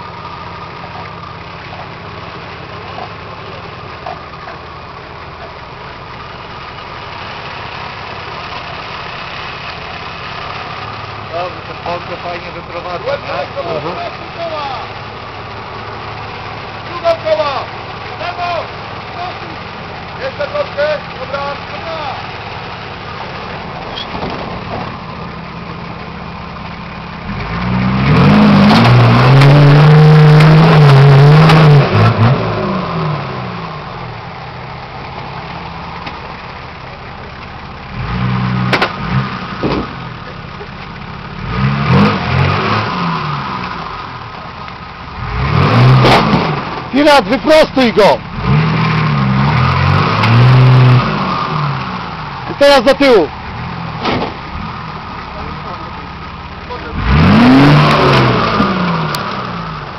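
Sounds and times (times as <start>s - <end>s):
diesel engine running and revving: 0.0s - 59.9s.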